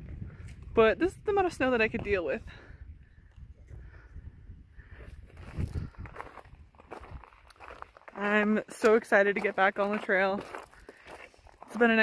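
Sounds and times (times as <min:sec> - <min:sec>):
wind rumbling on microphone: 0:00.0 - 0:08.0
footsteps on gravel: 0:05.0 - 0:12.0.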